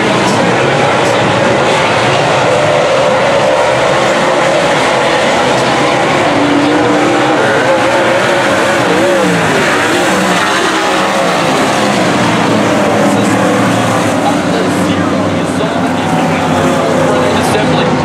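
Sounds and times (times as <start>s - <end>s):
race car engines roaring: 0.0s - 18.0s.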